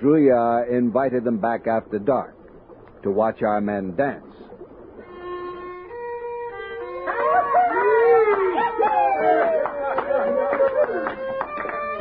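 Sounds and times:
dogs howling: 0:06.8 - 0:11.2.

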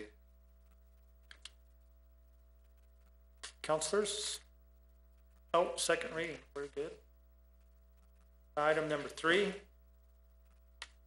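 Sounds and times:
steady electrical hum: 0:00.0 - 0:11.0
faint clicks: 0:00.6 - 0:01.6.

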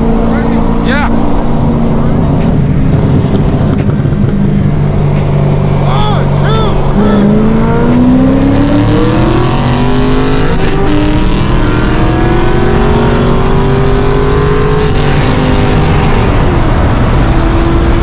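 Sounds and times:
car engine at full throttle: 0:00.0 - 0:18.0.

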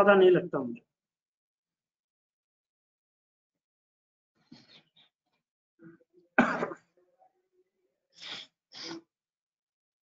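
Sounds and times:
man coughing: 0:06.4 - 0:07.0.

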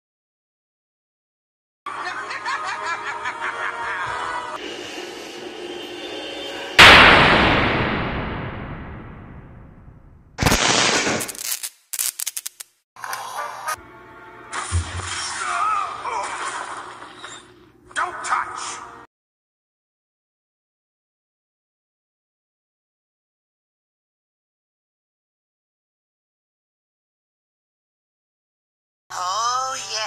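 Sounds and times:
loud thunder crack: 0:06.8 - 0:11.0.

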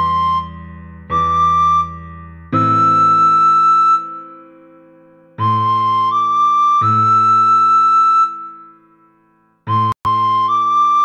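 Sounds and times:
recorder-like woodwind melody: 0:00.0 - 0:04.7, 0:05.4 - 0:08.8, 0:09.7 - 0:11.0.

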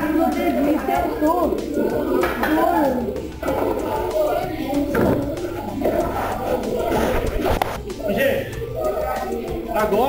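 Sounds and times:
students chattering: 0:00.0 - 0:10.0.

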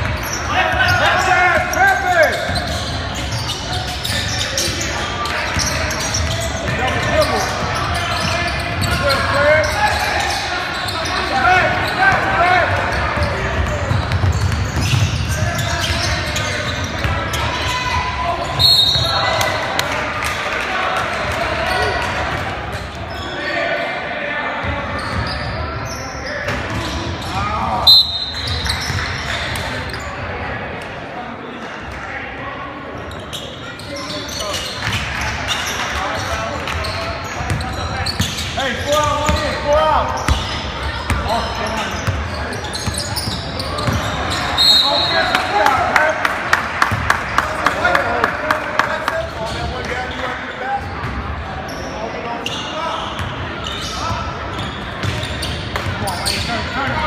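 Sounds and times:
people shouting and talking: 0:00.0 - 0:57.0
referee's whistle: 0:18.5 - 0:19.3, 0:27.8 - 0:29.0, 0:44.0 - 0:45.4.

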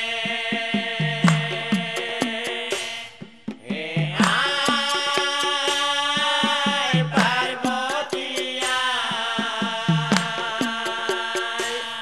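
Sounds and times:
drum strikes: 0:00.5 - 0:12.0.

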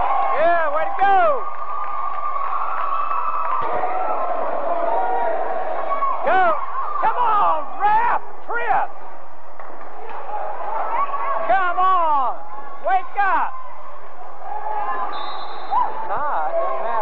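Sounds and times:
gym background noise: 0:00.0 - 0:17.0.

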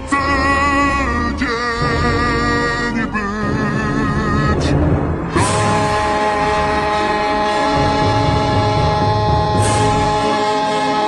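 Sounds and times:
held musical note: 0:00.0 - 0:11.0
person singing with vibrato: 0:00.0 - 0:11.0.

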